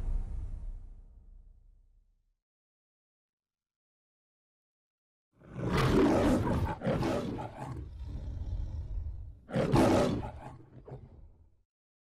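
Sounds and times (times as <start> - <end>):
lion roaring: 5.4 - 11.4
lion growl: 5.4 - 11.5.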